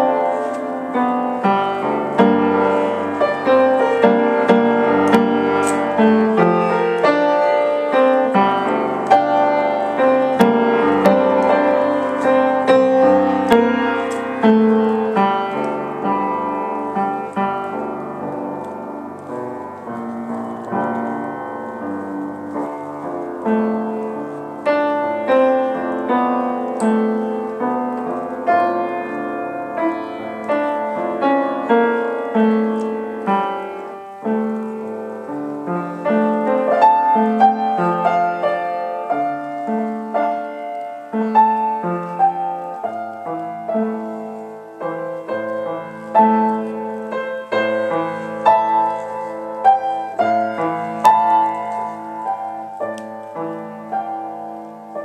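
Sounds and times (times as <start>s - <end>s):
solo piano improvisation: 0.0s - 55.0s.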